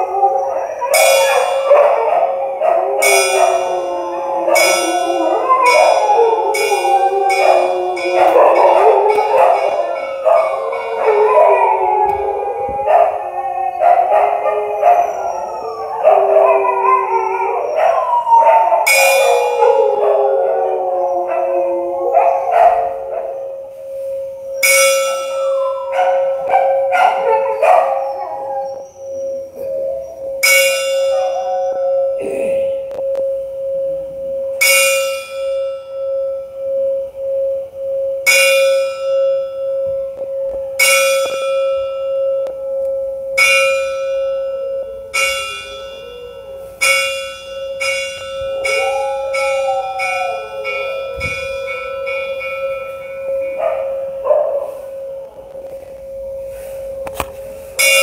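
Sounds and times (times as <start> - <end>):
dog howling: 0.0 - 23.6, 25.3 - 33.0, 44.1 - 47.1, 47.7 - 56.0
large bronze bell struck: 0.9 - 2.2, 2.9 - 13.2, 18.8 - 20.0, 22.4 - 26.6, 29.7 - 58.0.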